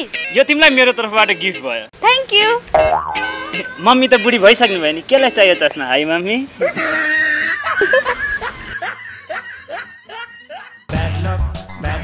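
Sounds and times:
music: 0.0 - 1.9, 10.8 - 12.0.

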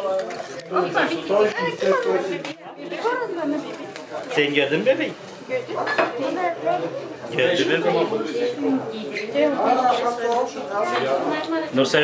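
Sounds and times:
dishes and cutlery clinking: 0.0 - 2.0, 5.7 - 6.4
people chattering: 0.0 - 12.0.

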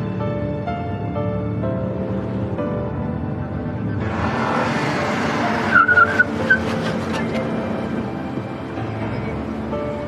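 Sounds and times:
background music: 0.0 - 10.0
car tyres squealing: 3.9 - 8.0.

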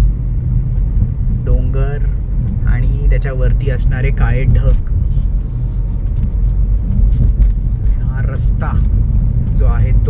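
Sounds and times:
road rumble inside car: 0.0 - 10.0.

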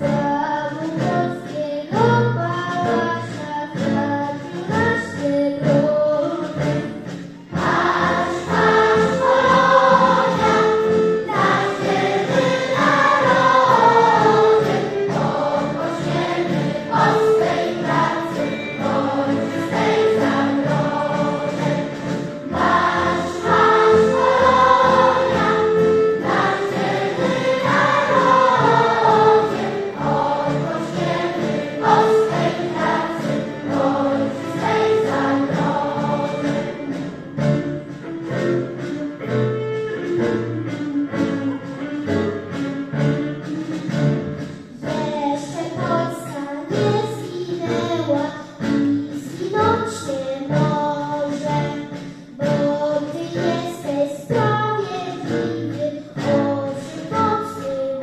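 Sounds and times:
choir singing in harmony: 7.5 - 37.6.

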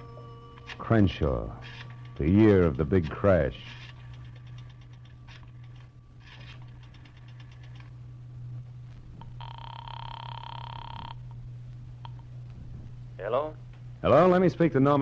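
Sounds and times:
telephone ring: 0.0 - 4.6, 9.2 - 11.2
rotary dial clicks: 3.8 - 7.9.

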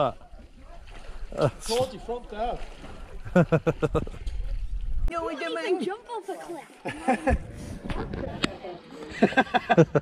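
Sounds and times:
young men talking and laughing: 1.3 - 4.6, 5.2 - 7.8, 8.5 - 10.0.

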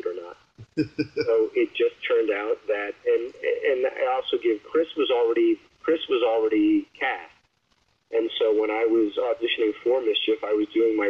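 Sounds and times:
person talking: 0.0 - 7.3, 8.1 - 11.0.

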